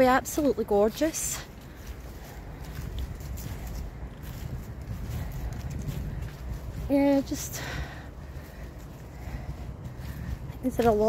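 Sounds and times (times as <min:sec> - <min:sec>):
footsteps on grass and leaves: 0:00.0 - 0:11.0
wind rumble on microphone: 0:00.0 - 0:11.0.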